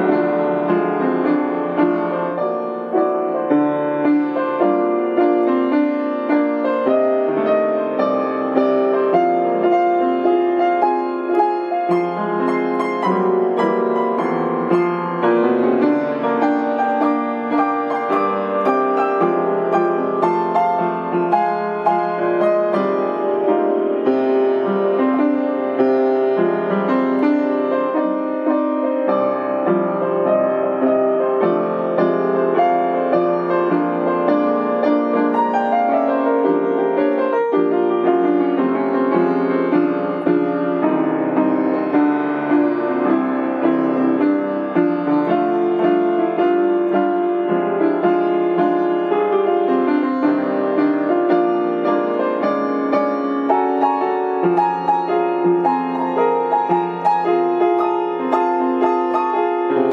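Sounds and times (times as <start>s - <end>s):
piano improvisation: 0.0s - 59.9s.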